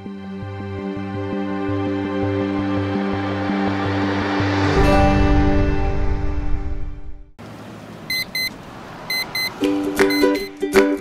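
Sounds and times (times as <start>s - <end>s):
music jingle: 2.6s - 7.2s, 9.1s - 11.0s
alarm clock double beep: 8.1s - 8.5s, 9.1s - 10.5s.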